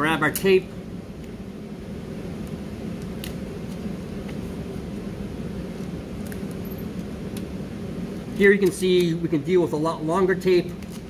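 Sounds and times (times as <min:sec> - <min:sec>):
room ventilation hum: 0:00.0 - 0:11.0
tape and paper rustling: 0:10.7 - 0:11.0.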